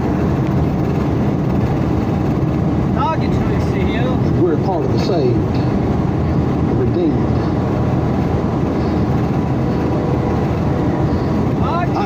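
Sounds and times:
road and tyre noise in car: 0.0 - 12.0.

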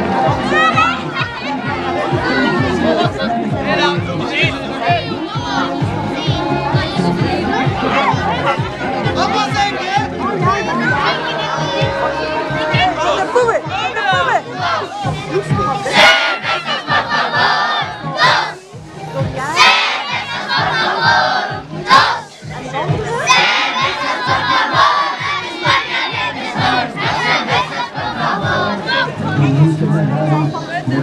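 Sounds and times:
children shouting and cheering: 0.0 - 18.6, 19.2 - 29.7.

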